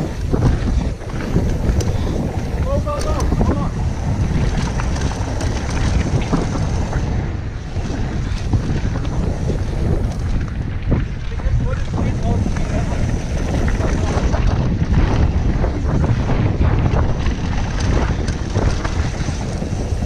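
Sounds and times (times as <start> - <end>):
bike rattling clicks: 0.0 - 20.0
tyres on dirt and gravel: 0.0 - 20.0
wind buffeting microphone: 0.0 - 20.0.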